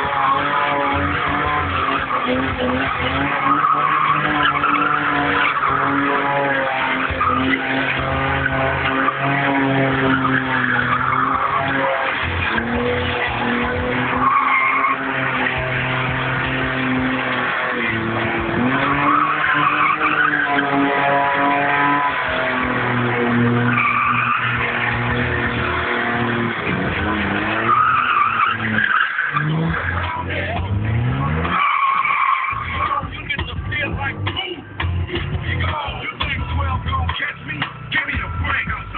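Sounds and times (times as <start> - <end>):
car engine revving: 0.0 - 38.9
tyres squealing: 0.0 - 38.9.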